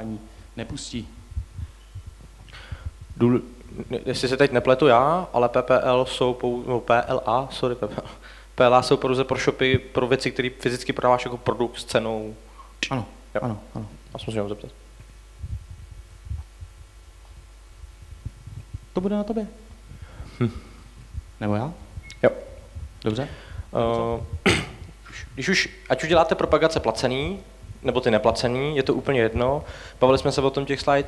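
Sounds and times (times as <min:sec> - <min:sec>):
steady electrical hum: 0:00.0 - 0:31.0
microphone handling thumps: 0:00.7 - 0:04.3, 0:13.8 - 0:30.4
intake of breath: 0:02.5 - 0:03.0, 0:19.9 - 0:21.0, 0:23.2 - 0:23.7, 0:29.7 - 0:30.0.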